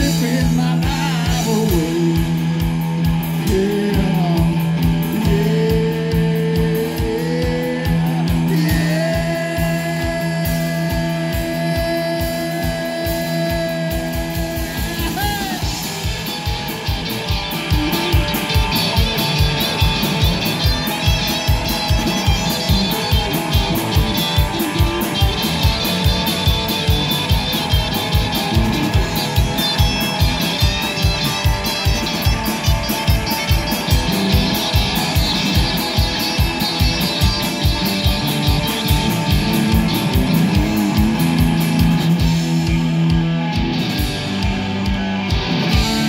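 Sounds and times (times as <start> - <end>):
blues-rock band playing: 0.0 - 46.0
drum kit fast beat: 0.0 - 46.0
electric guitar bending notes: 0.0 - 46.0.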